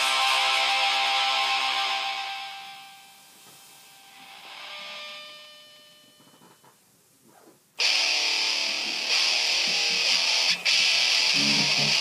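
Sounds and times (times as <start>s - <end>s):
guitar chord ringing: 0.0s - 3.2s, 4.0s - 6.3s, 7.8s - 12.0s
loud strummed guitar: 7.8s - 12.0s.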